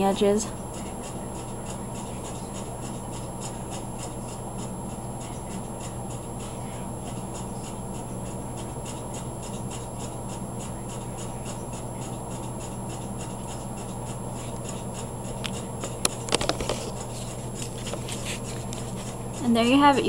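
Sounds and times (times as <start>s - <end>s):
low electrical hum: 0.0s - 20.0s
camera handling clicks and rubbing: 16.2s - 17.0s.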